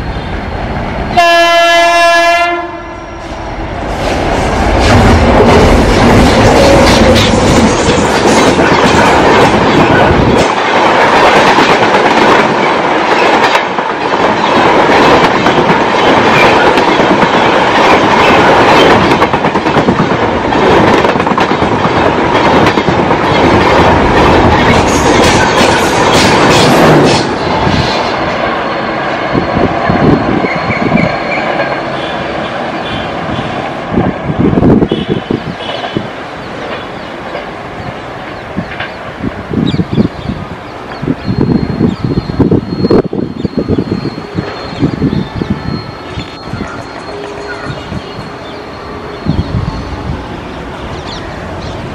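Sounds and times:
train rushing past: 0:00.0 - 0:51.9
rail clicks: 0:03.2 - 0:51.9.

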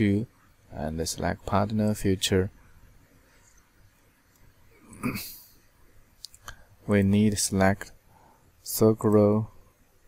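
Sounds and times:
man coughing: 0:04.8 - 0:05.5.

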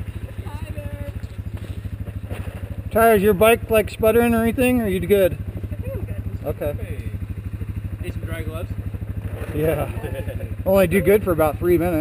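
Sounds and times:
quad engine idling: 0:00.0 - 0:12.0.

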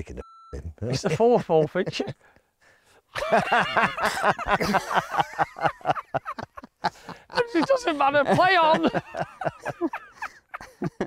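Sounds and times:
man laughing: 0:00.8 - 0:02.2, 0:03.2 - 0:11.0.

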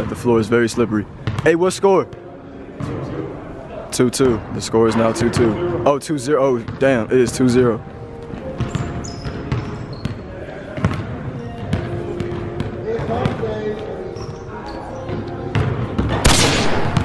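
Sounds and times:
basketball bouncing on gym floor: 0:01.2 - 0:01.5, 0:08.5 - 0:10.2, 0:10.8 - 0:13.4, 0:15.1 - 0:16.2
sneaker squeaks: 0:08.1 - 0:16.2.

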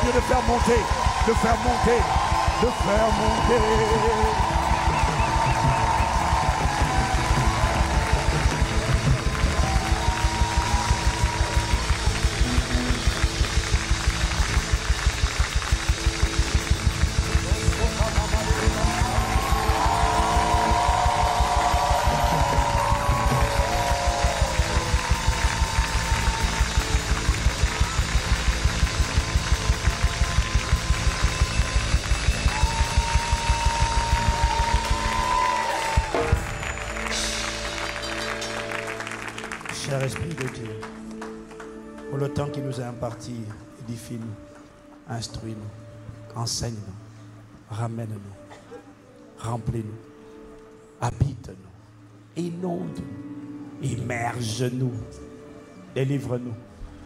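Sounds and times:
fast steady drum beat: 0:00.0 - 0:38.0
congregation hand clapping: 0:00.0 - 0:42.6.

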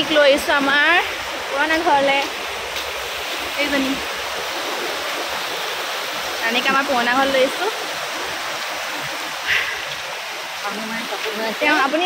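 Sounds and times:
river water rushing over weir: 0:00.0 - 0:12.0.

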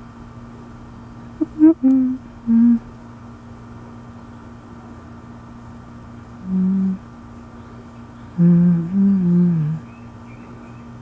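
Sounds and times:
low hum: 0:00.0 - 0:11.0
person humming notes: 0:01.4 - 0:02.8, 0:06.4 - 0:07.0, 0:08.4 - 0:09.9.

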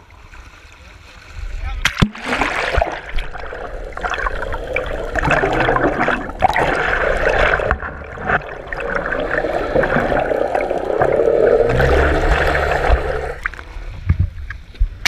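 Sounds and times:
water rushing and gurgling: 0:00.0 - 0:13.9
low hum: 0:03.2 - 0:14.2.

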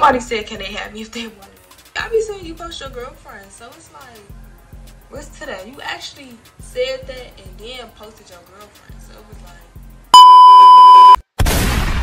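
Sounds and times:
high-pitched censor bleep: 0:10.1 - 0:11.2
crash sound effect: 0:11.4 - 0:12.0.

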